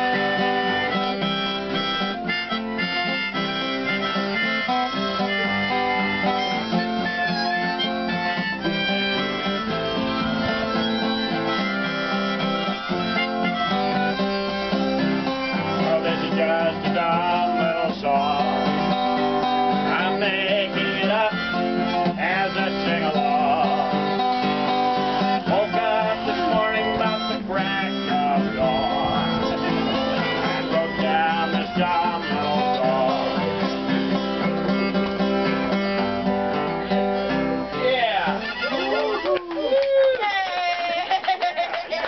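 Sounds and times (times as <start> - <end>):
harmonicas playing chords: 0.0 - 39.2
acoustic guitar strumming: 0.0 - 39.5.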